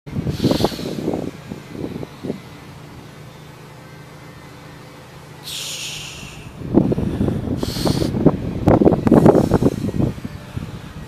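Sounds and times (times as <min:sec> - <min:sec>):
engine idling: 0:00.1 - 0:11.0.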